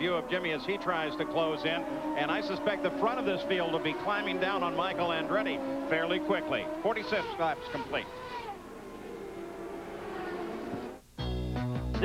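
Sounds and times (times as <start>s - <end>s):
race broadcast engine noise: 0.0s - 11.1s.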